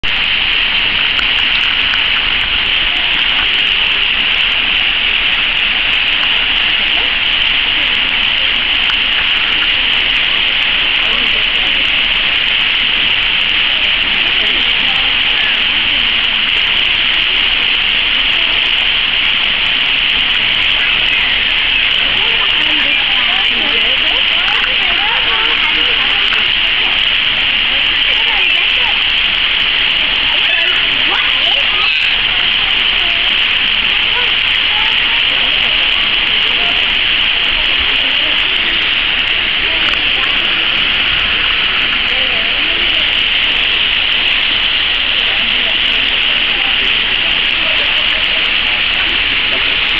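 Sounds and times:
fountain jet spraying into pool: 0:00.0 - 0:49.9
indistinct voices: 0:00.0 - 0:49.9.

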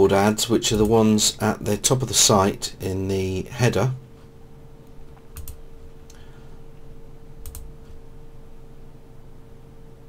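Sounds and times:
faint steady hum: 0:00.0 - 0:10.0
computer mouse clicks: 0:05.3 - 0:06.2, 0:07.4 - 0:07.7.

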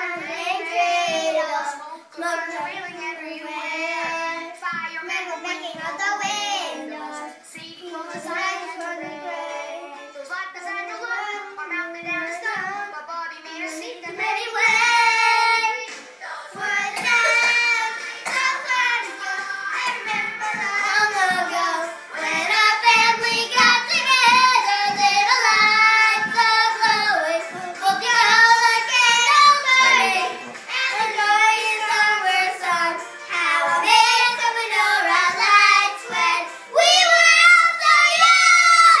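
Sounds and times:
children singing: 0:00.0 - 0:39.0.

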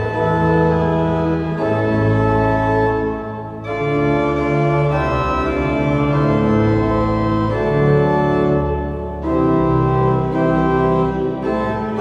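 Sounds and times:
pipe organ playing hymn: 0:00.0 - 0:12.0.

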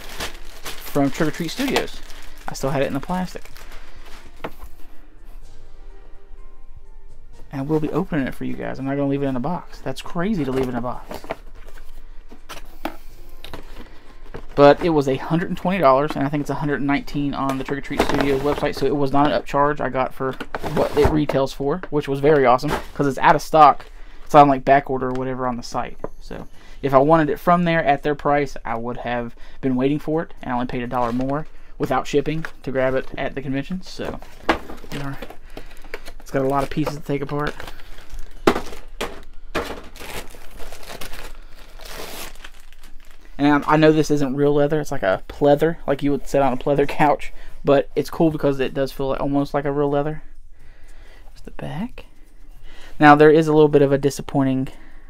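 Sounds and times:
plastic bag crinkling: 0:00.0 - 0:04.8, 0:33.9 - 0:44.1.

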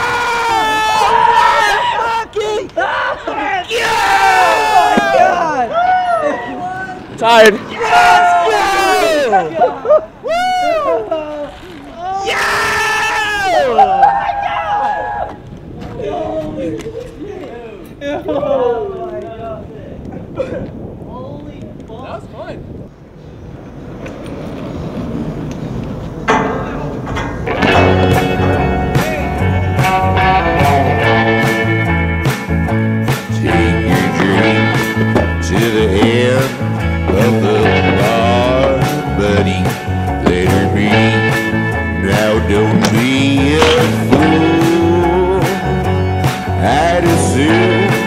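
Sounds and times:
people yelling and cheering: 0:00.0 - 0:20.1
low rumble of wind: 0:00.0 - 0:46.3
distant traffic: 0:22.9 - 0:29.8.

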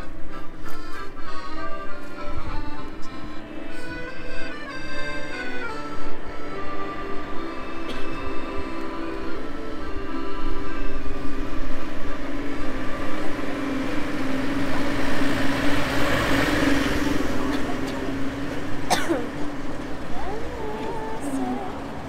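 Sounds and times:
accordion playing: 0:00.0 - 0:22.0
passing vehicle: 0:00.0 - 0:22.0.

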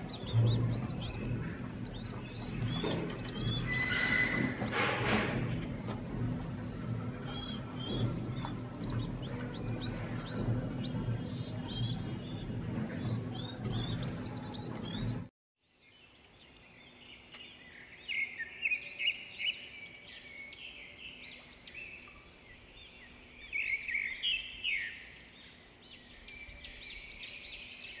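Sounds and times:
low steady hum: 0:00.0 - 0:15.3
small birds chirping: 0:00.0 - 0:28.0.

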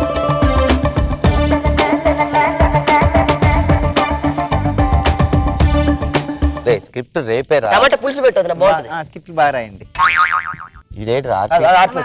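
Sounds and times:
man speaking: 0:06.6 - 0:10.0, 0:10.9 - 0:12.0
comic wobbling boing: 0:10.0 - 0:10.9.

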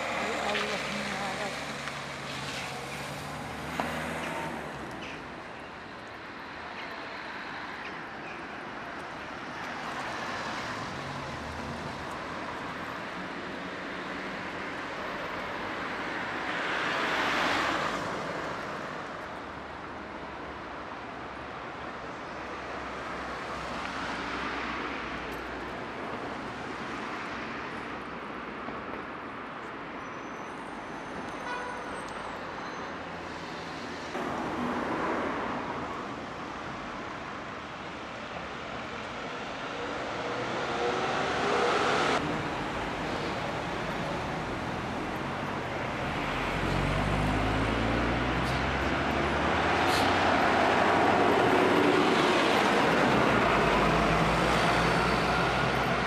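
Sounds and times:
steady street rumble: 0:00.0 - 0:56.0
vehicles passing close by: 0:00.0 - 0:56.0.

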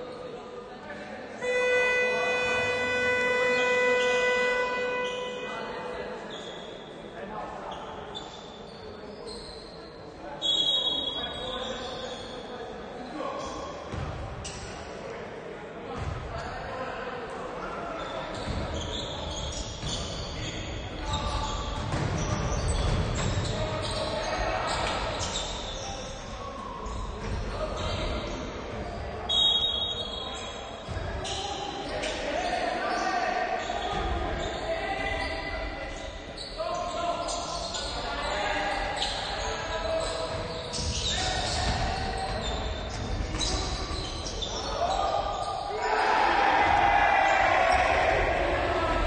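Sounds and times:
players calling out: 0:01.4 - 0:06.5, 0:31.2 - 0:49.0.

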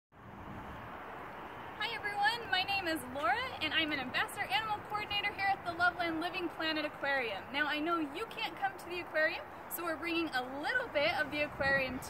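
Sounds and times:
outdoor background hiss: 0:00.2 - 0:12.0
woman's voice: 0:01.8 - 0:12.0.

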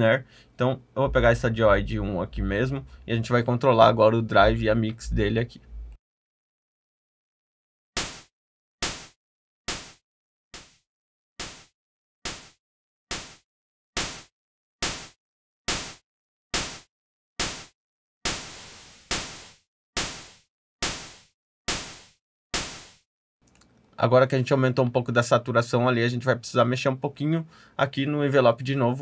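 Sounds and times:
distorted synth snare hits: 0:18.3 - 0:23.0.

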